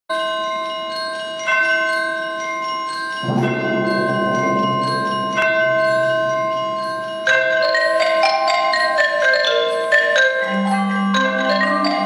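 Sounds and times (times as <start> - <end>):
ringing bell-like mallet percussion: 0.1 - 12.0.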